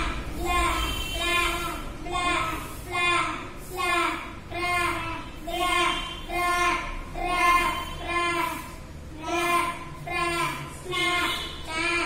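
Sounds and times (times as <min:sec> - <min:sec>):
child chanting sing-song: 0:00.0 - 0:12.0.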